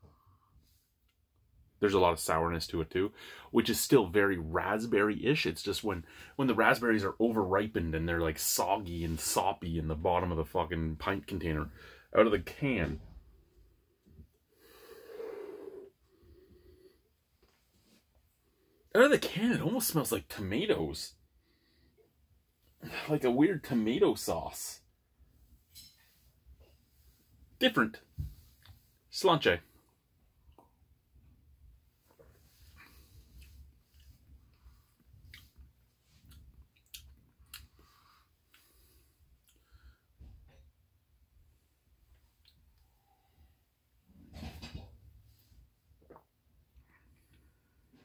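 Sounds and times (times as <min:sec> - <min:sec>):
man sniffing deeply: 0:14.6 - 0:16.0
lip smacks and tongue clicks: 0:36.2 - 0:37.8.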